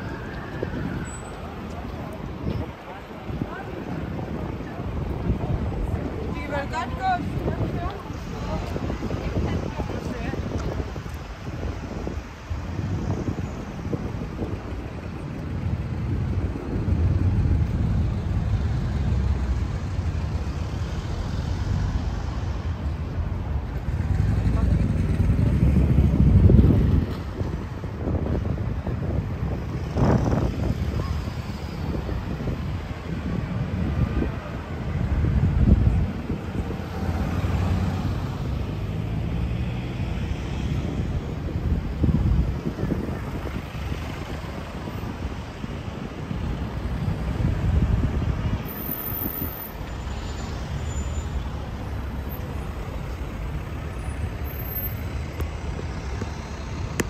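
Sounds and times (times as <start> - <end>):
cars passing: 0.0 - 57.0
people talking: 1.2 - 11.0, 24.1 - 26.3.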